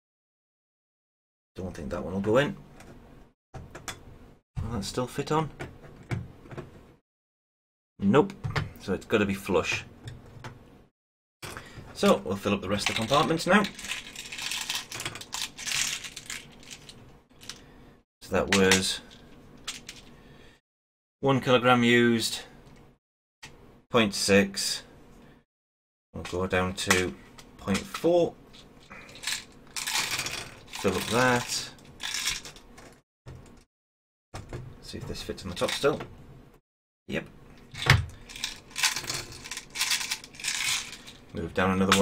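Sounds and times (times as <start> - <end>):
metal sinkers rattling into plastic: 12.7 - 17.6, 29.1 - 32.9, 37.8 - 41.3.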